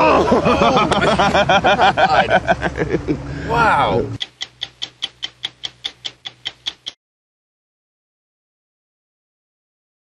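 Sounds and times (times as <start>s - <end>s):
stopwatch ticking: 4.2s - 7.0s.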